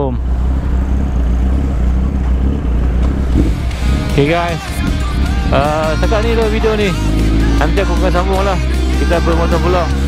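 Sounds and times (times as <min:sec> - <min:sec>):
motorcycle engine low rumble: 0:00.0 - 0:10.0.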